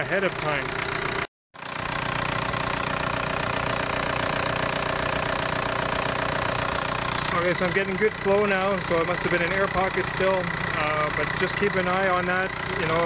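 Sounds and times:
diesel engine idling: 0.0 - 13.0.

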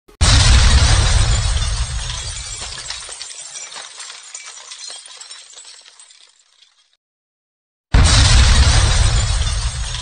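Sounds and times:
glass shattering crash: 0.2 - 7.0, 8.0 - 10.0
tinkling glass fragments: 1.4 - 7.0.

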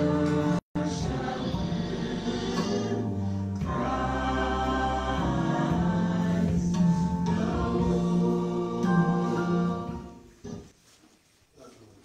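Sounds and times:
gospel choir singing: 0.0 - 10.7.

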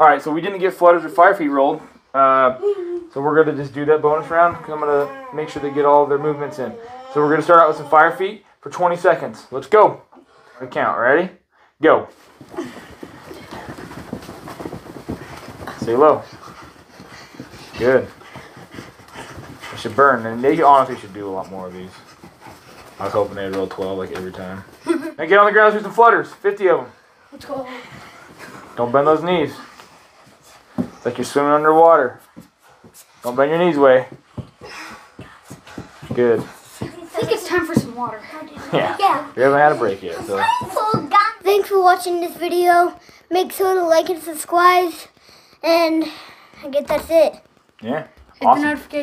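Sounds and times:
children running in place on carpet: 0.1 - 10.0, 12.1 - 49.0
children breathing hard: 34.4 - 37.0.

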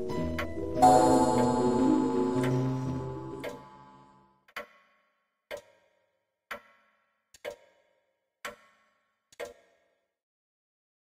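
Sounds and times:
sustained music chords: 0.8 - 4.0.

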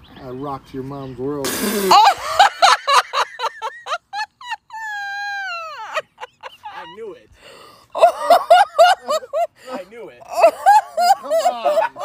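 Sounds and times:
person crying out high: 1.8 - 2.2.

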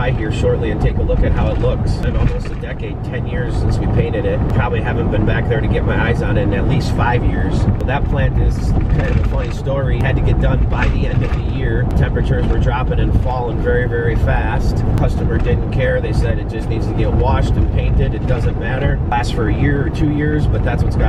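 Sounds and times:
man talking: 0.0 - 21.0
road and engine rumble: 0.0 - 21.0.

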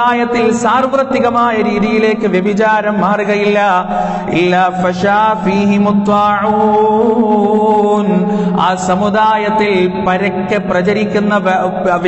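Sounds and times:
man preaching in sing-song chant: 0.0 - 12.0.

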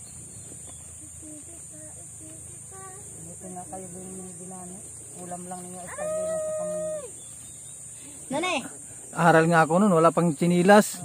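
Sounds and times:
rooster crowing: 5.9 - 7.2.

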